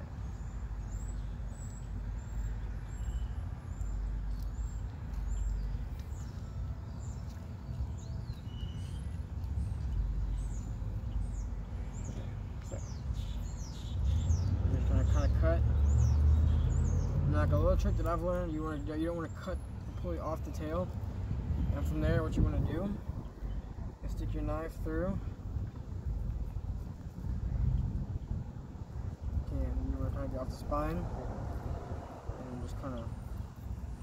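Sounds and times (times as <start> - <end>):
small birds chirping: 0.0 - 34.0
steady low rumble: 0.0 - 34.0.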